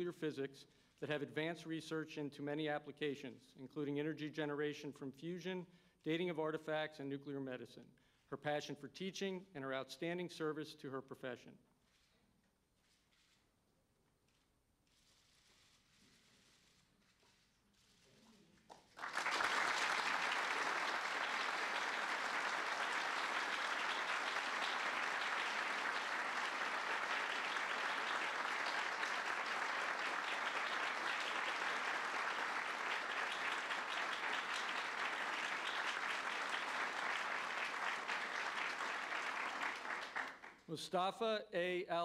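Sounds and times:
audience applause: 18.9s - 40.6s.

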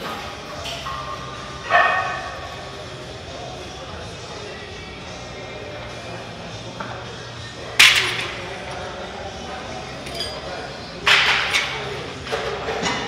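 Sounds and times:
low gym background: 0.0s - 13.0s.

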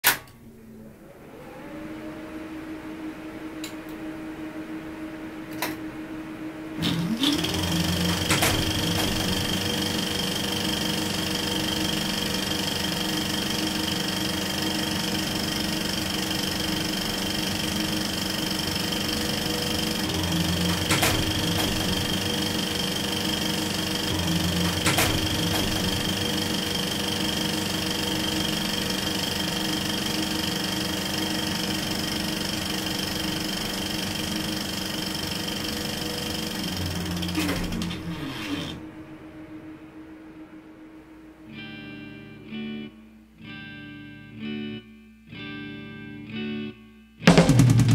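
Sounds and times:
film projector whirring: 5.4s - 38.9s
projector clicks: 6.8s - 14.4s, 19.6s - 38.7s.

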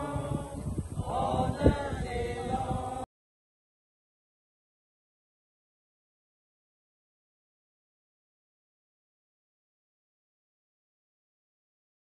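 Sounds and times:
group singing together: 0.0s - 3.1s.

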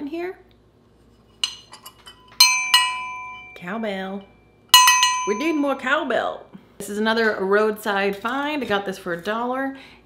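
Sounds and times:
light metal clink: 1.4s - 3.7s, 4.8s - 5.7s
cowbell ringing: 2.1s - 3.6s, 4.7s - 5.8s.

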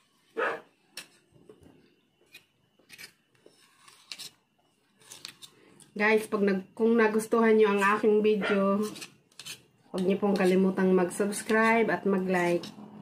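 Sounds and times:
metal spoon clicking and scraping: 8.8s - 10.6s, 12.3s - 12.9s.

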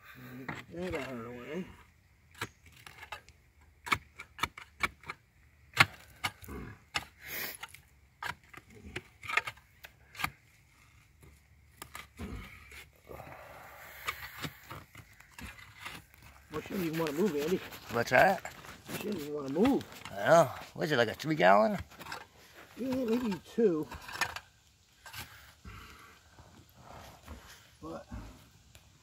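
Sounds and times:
hand tool digging in dirt: 0.3s - 1.5s, 2.3s - 26.1s.

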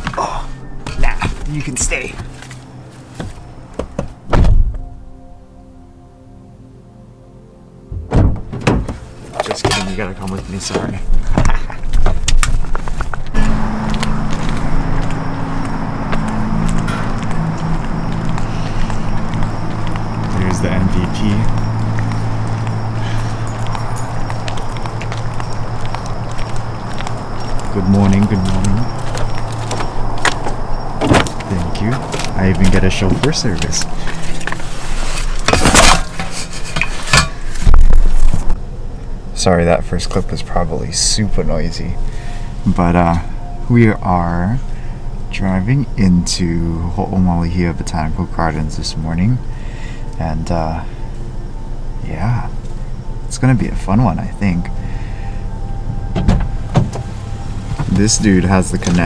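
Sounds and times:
heavy low thump: 3.8s - 4.9s, 7.9s - 9.0s, 55.9s - 57.9s
car engine and road hum: 7.9s - 59.0s.

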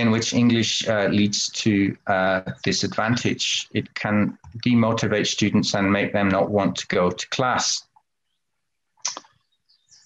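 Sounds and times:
speech: 0.0s - 7.9s.

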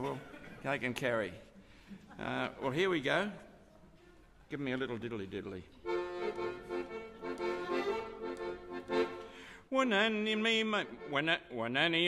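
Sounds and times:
piano accordion playing: 5.8s - 11.6s.

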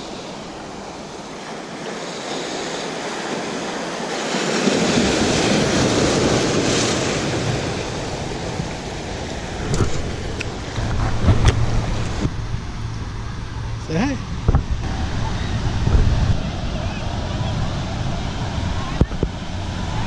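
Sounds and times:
waves breaking on rocks: 0.0s - 20.0s.

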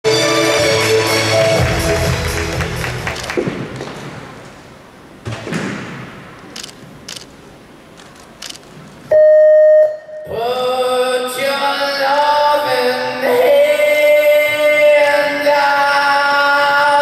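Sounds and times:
music: 0.1s - 3.4s
loud electronic beep: 9.1s - 10.3s.

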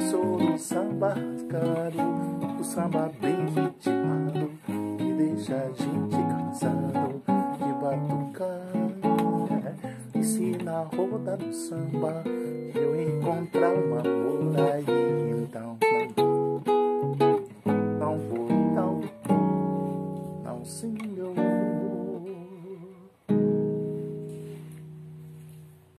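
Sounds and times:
acoustic guitar fingerpicked chords: 0.0s - 26.0s.

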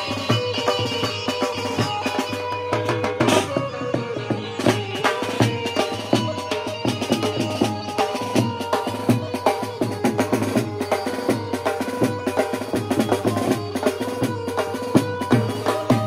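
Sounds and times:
large two-headed drum: 0.0s - 16.0s.

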